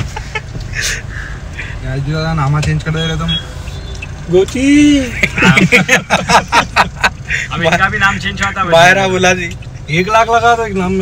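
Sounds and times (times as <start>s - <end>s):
men laughing: 0.0s - 1.8s, 5.0s - 7.8s
car rumble: 0.0s - 11.0s.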